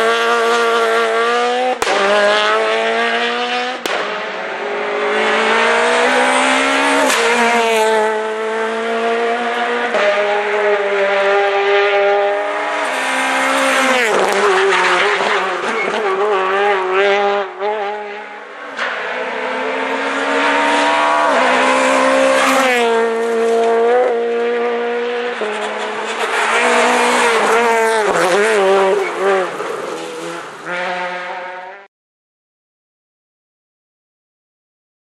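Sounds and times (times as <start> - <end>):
rally car engine revving: 0.0 - 31.9.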